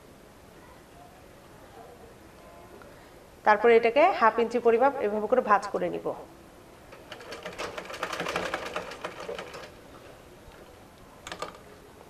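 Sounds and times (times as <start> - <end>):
sewing machine stitching: 6.9 - 9.8.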